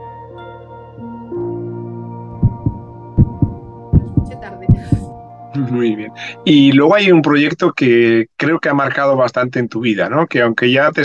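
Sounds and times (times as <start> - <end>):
low double thump: 2.4 - 5.2
sustained soft tones: 2.4 - 5.2.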